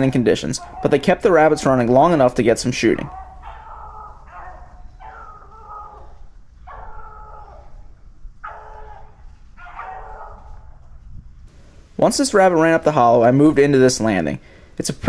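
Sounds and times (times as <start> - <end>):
beagles baying: 0.0 - 11.2.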